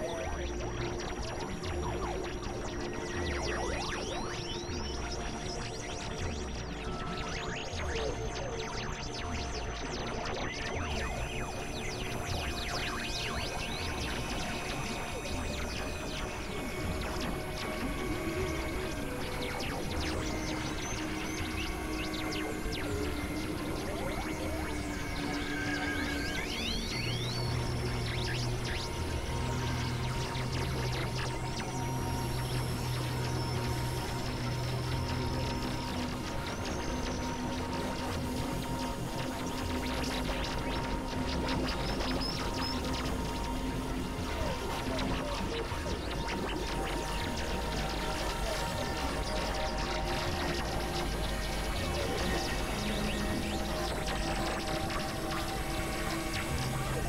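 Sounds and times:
electronic drone music: 0:10.9 - 0:57.0.

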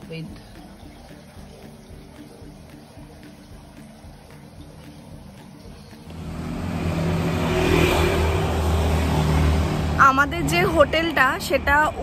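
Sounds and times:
road noise: 0:05.3 - 0:12.0
vehicle engine hum: 0:06.0 - 0:12.0.

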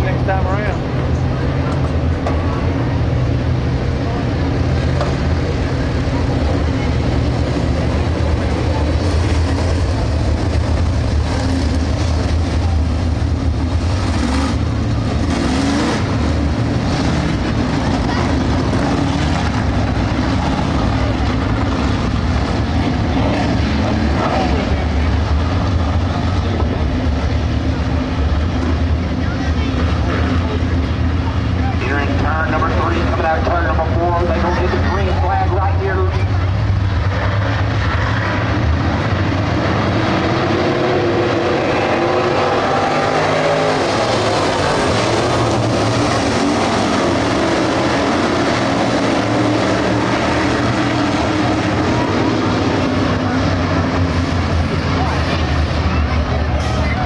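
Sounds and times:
race car engines droning: 0:00.0 - 0:57.0.

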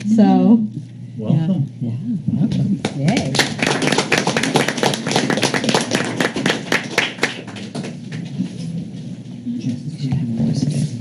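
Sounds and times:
small group applauding: 0:02.8 - 0:08.6.

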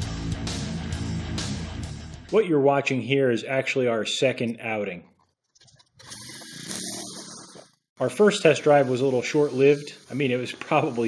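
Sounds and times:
pull-starter rasping whirr: 0:05.7 - 0:11.0.

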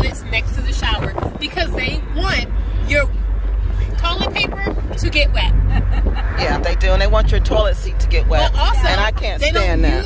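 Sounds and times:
car road and engine rumble: 0:00.0 - 0:10.0
women talking: 0:03.8 - 0:10.0.

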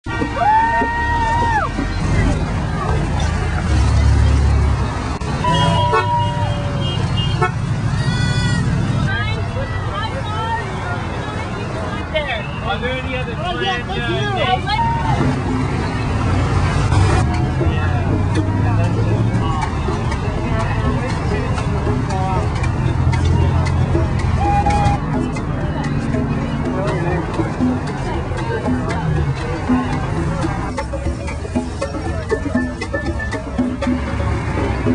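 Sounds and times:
road traffic rumble: 0:00.0 - 0:34.9
car horn blast: 0:05.4 - 0:07.7.

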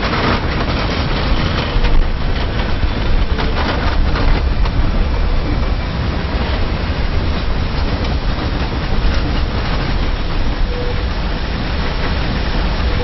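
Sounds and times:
train rumbling on tracks: 0:00.0 - 0:13.0
wheels clicking over rails: 0:00.0 - 0:13.0.

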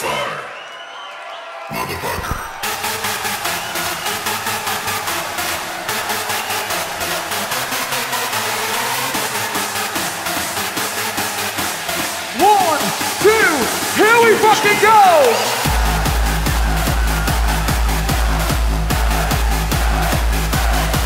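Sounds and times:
electronic dance music: 0:01.7 - 0:21.0.

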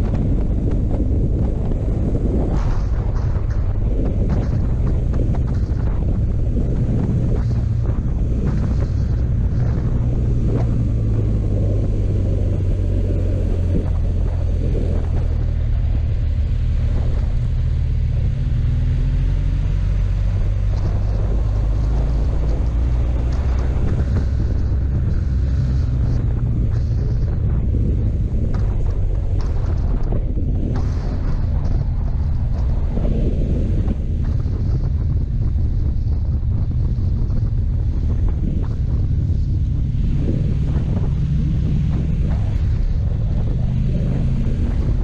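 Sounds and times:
motorcycle engine running: 0:00.0 - 0:45.0
wind rushing over microphone: 0:00.0 - 0:45.0.

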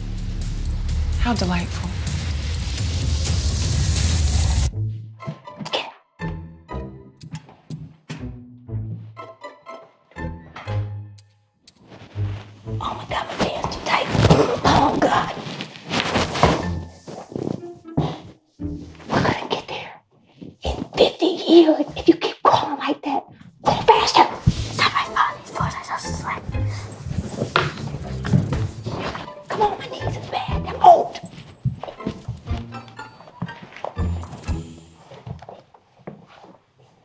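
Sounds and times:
loud sustained sound: 0:00.0 - 0:04.7
bodies scuffling on hardwood floor: 0:11.8 - 0:19.5, 0:20.2 - 0:22.2, 0:23.3 - 0:30.4, 0:31.0 - 0:37.0.

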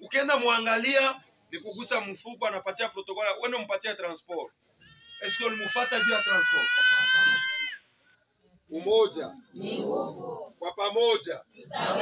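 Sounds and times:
man speaking: 0:00.0 - 0:04.5, 0:08.7 - 0:09.4
baby crying: 0:04.8 - 0:07.8.

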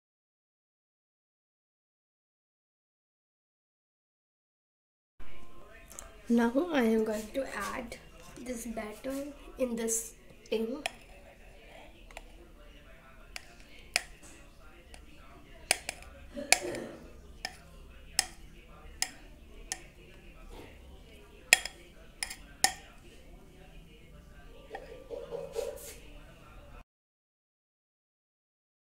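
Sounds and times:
spatula scraping glass bowl: 0:21.5 - 0:22.8.

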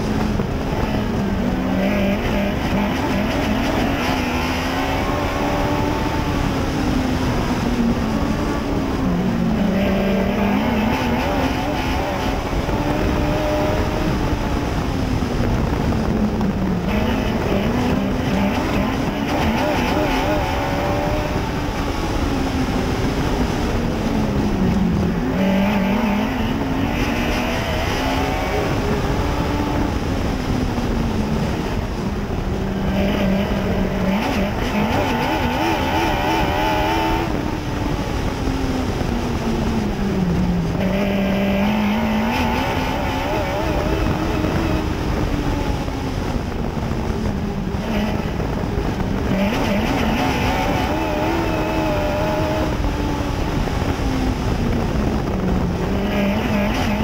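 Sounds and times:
constant rushing noise: 0:00.0 - 0:57.0
race car engine: 0:00.0 - 0:57.0.

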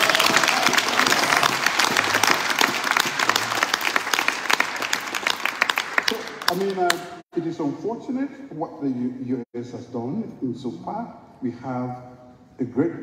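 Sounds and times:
audience applauding: 0:00.0 - 0:07.2.

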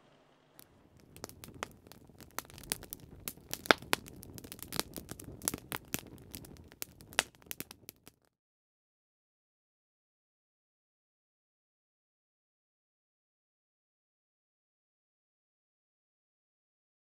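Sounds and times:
wood fire crackling and popping: 0:00.0 - 0:08.3.

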